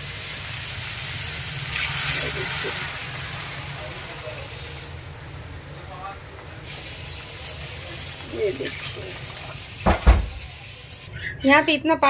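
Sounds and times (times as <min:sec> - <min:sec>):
paste sizzling and hissing: 0:00.0 - 0:05.4, 0:06.0 - 0:11.1.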